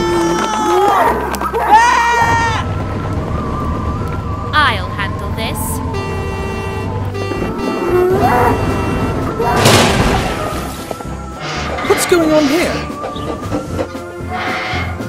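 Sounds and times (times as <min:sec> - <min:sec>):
background music: 0:04.2 - 0:15.0
bull mooing: 0:06.0 - 0:09.7.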